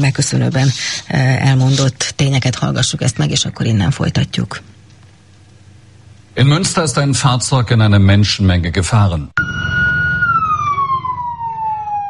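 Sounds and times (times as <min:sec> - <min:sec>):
emergency vehicle siren: 0:09.4 - 0:12.0.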